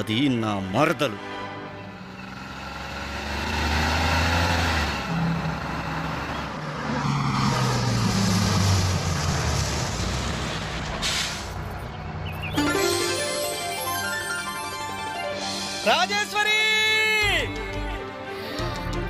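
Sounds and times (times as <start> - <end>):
bus engine running: 0.0 - 13.2
brief air hiss: 11.0 - 11.6.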